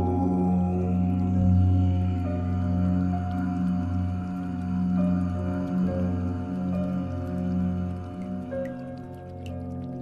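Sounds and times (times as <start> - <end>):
deep chanting drone: 0.0 - 9.0.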